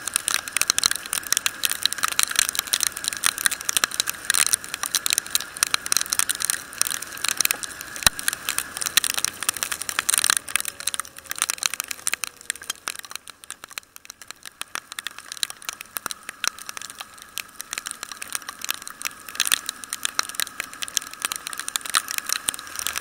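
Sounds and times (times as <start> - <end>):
raindrops ticking on camera housing: 0.0 - 23.0
wet road and wind hiss: 0.0 - 23.0.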